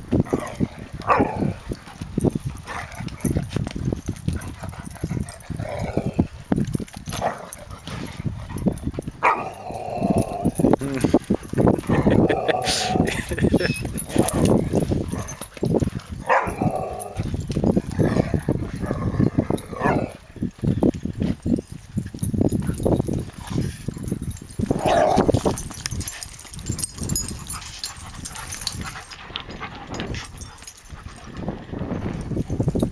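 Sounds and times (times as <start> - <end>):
dogs barking while playing: 0.2 - 1.8, 2.6 - 3.6, 7.1 - 10.7, 11.8 - 20.3, 22.5 - 30.8.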